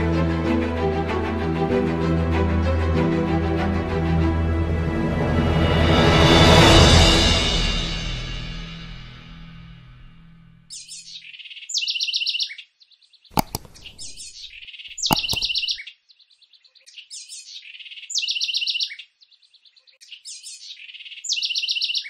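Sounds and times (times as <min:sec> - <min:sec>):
songbird singing with trill: 0:10.7 - 0:12.6, 0:13.4 - 0:15.9, 0:16.7 - 0:19.0, 0:20.0 - 0:22.0
sharp clicks: 0:13.4 - 0:15.8.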